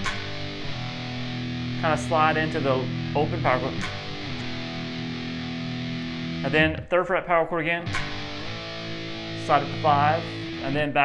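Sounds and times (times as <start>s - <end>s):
distorted electric guitar chord: 0.0s - 6.8s, 7.8s - 11.0s.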